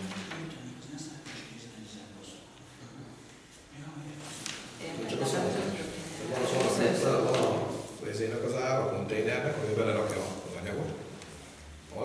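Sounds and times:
indistinct talk: 0.0 - 11.0
paper rustling: 4.2 - 4.7.

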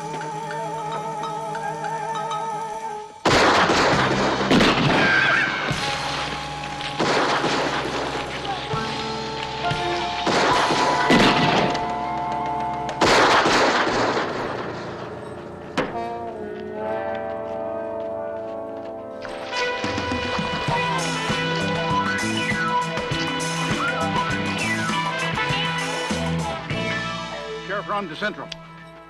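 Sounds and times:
echoing rifle shots: 3.3 - 6.2, 6.9 - 8.5, 9.5 - 11.9, 13.0 - 16.0
dramatic music with held notes: 3.5 - 29.0.

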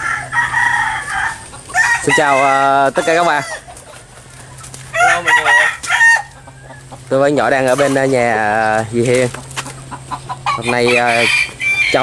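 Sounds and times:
chicken squawking: 0.0 - 7.1, 9.3 - 12.0.

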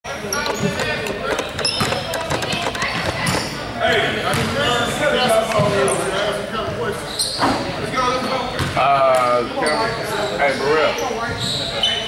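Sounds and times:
people talking: 0.1 - 7.0
basketball bouncing on hardwood floor: 0.3 - 3.6.

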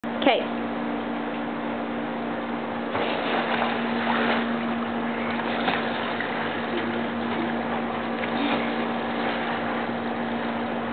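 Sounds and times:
low steady hum: 0.0 - 10.9.

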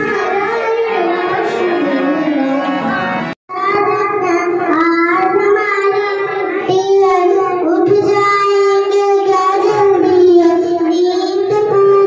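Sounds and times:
child singing into a microphone: 0.0 - 2.9, 3.5 - 12.0.

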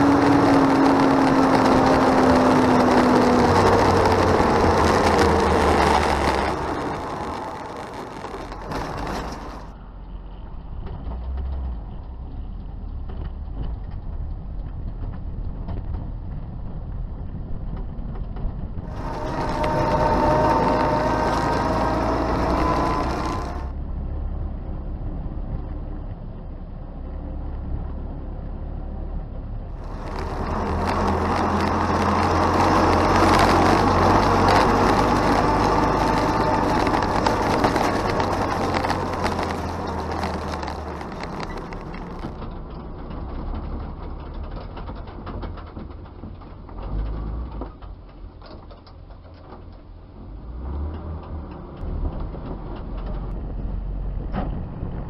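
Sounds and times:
truck engine running: 0.0 - 24.0, 29.7 - 47.2
drivetrain whine: 0.0 - 55.0.

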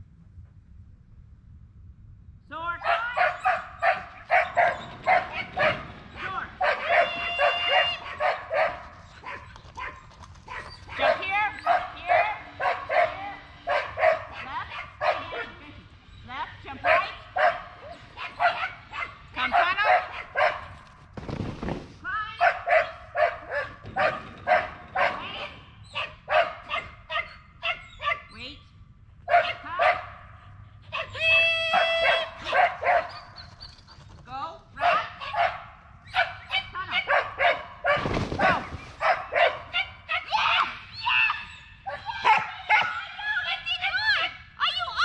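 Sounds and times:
dog barking: 2.8 - 15.6, 16.8 - 20.8, 22.4 - 28.3, 29.3 - 30.3, 30.9 - 33.5, 34.8 - 40.3, 41.9 - 43.0.

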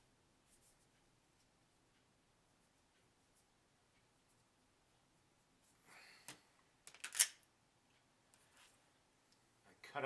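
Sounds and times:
fingers rustling on modelling clay: 0.4 - 1.8.

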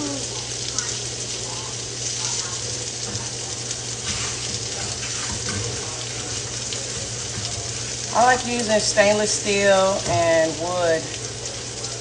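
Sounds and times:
sausages sizzling in a frying pan: 0.0 - 12.0.

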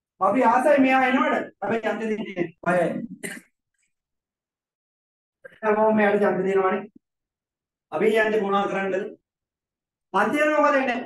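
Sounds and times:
man speaking: 0.2 - 3.3
man clearing throat: 2.7 - 3.6.

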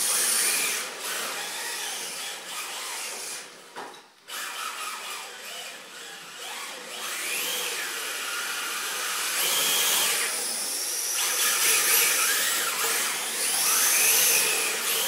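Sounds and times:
electric motors whining: 0.0 - 3.6, 4.3 - 15.0.

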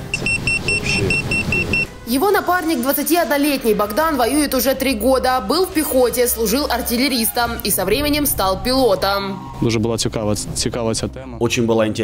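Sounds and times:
short high electronic beeps: 0.1 - 1.9.

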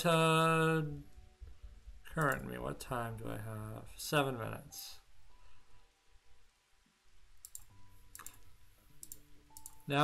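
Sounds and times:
faint electronic hum: 0.0 - 10.0
computer mouse clicking: 2.2 - 2.5, 7.4 - 8.4, 9.0 - 9.8.

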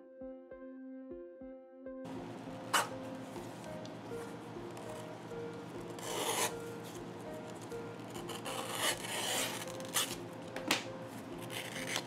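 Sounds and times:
blade slicing leather with rasping scrapes: 6.0 - 6.5, 8.3 - 10.2.

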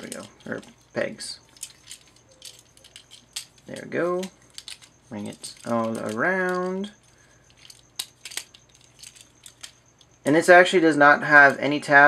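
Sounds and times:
plastic parts clicking: 0.0 - 0.8, 1.4 - 10.1.

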